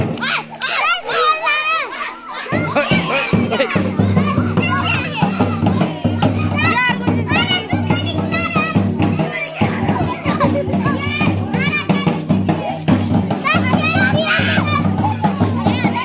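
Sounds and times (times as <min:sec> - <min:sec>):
live music with drum: 0:00.0 - 0:01.0, 0:02.4 - 0:16.0
children shouting and chattering: 0:00.0 - 0:16.0.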